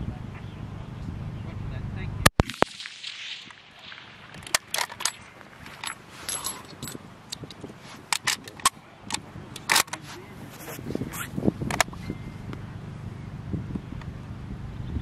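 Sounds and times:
weaker echo crack: 2.3 - 5.6
rifle shot: 2.3 - 6.0
rifle bolt clicks and rattles: 4.3 - 10.0.

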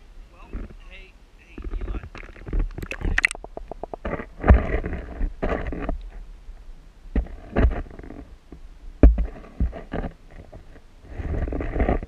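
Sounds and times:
water rushing: 0.0 - 4.2
underwater knocks and clicks: 1.5 - 6.1, 9.0 - 10.6.

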